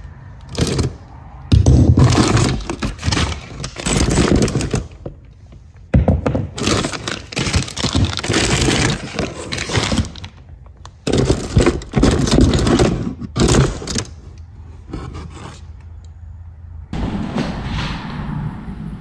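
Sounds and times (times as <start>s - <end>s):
metal bike parts rattling in box: 0.5s - 1.0s, 1.6s - 5.2s, 6.5s - 14.2s.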